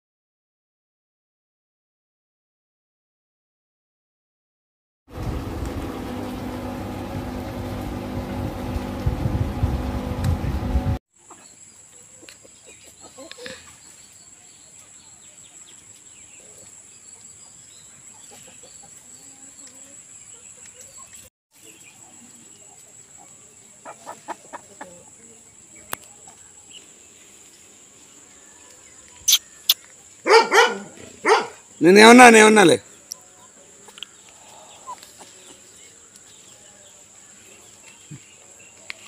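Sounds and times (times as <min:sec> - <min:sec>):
low rumble: 0:05.1 - 0:11.0
motor-like hum with held tones: 0:05.1 - 0:11.0
chicken clucking: 0:11.2 - 0:14.0, 0:18.0 - 0:19.2, 0:20.4 - 0:26.8, 0:33.1 - 0:36.6.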